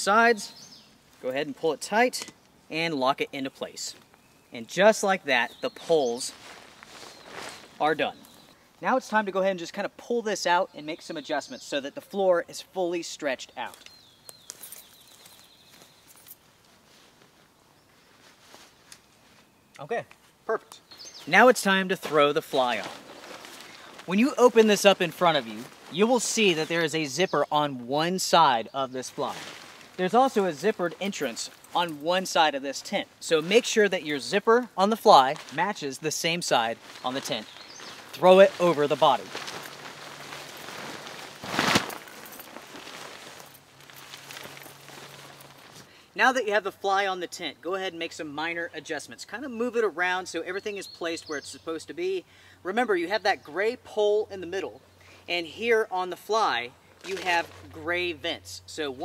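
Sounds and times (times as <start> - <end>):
tent fabric handling: 4.9 - 9.1, 13.7 - 19.5, 21.0 - 45.9, 57.0 - 58.2
footsteps on grass: 5.5 - 9.0, 13.7 - 19.5, 20.2 - 46.0, 56.5 - 57.9
fabric swish: 36.8 - 45.8.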